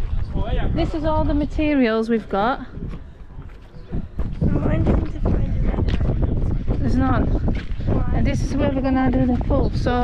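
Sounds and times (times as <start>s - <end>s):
footsteps on dirt: 0.0s - 10.0s
wind rumble on microphone: 0.0s - 10.0s.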